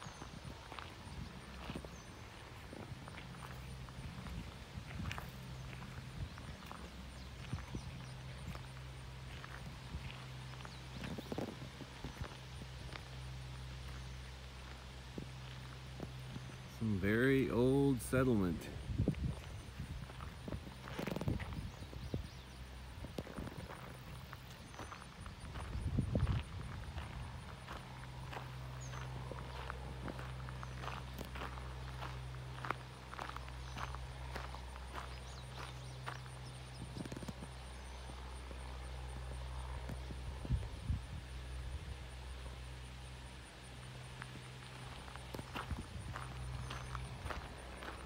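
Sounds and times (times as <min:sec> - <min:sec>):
footsteps on grass: 0:00.0 - 0:40.1, 0:44.0 - 0:48.0
steady low hum: 0:00.0 - 0:48.0.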